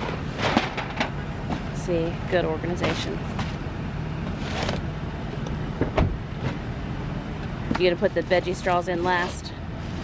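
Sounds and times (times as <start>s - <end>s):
vehicle low rumble: 0.0s - 10.0s.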